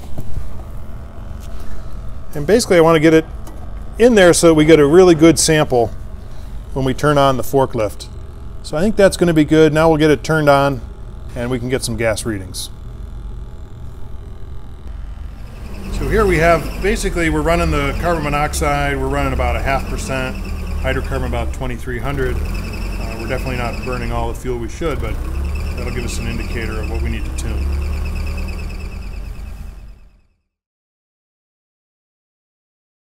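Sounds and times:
forklift engine rumbling: 12.7 - 30.2.

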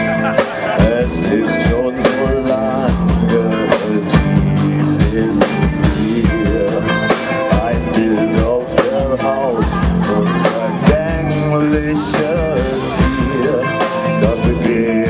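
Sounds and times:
bass guitar: 0.0 - 15.0
electric guitars: 0.0 - 15.0.

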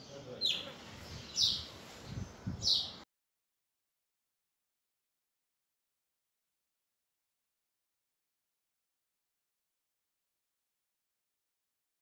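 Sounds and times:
bird chirping: 0.0 - 3.0.

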